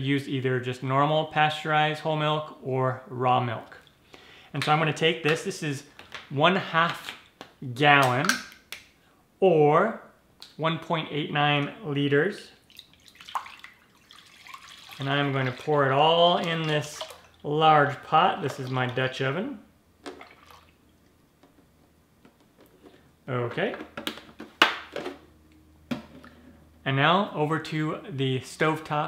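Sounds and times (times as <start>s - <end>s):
man speaking: 0.0s - 3.8s, 4.5s - 8.4s, 9.4s - 12.6s, 15.0s - 19.7s, 23.3s - 23.9s, 26.8s - 29.0s
milk pouring into a pot: 12.6s - 19.2s, 20.1s - 20.8s.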